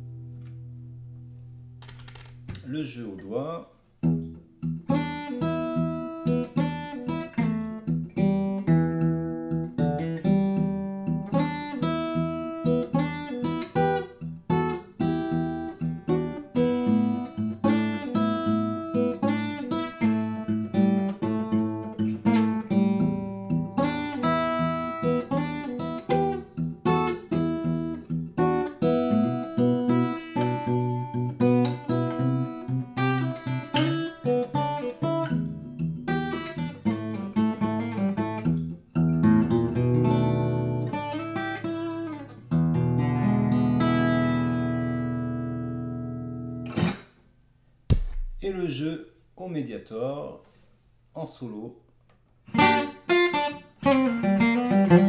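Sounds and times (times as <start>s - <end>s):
fingerpicked acoustic guitar: 0.0s - 2.7s, 4.0s - 47.0s, 52.4s - 55.0s.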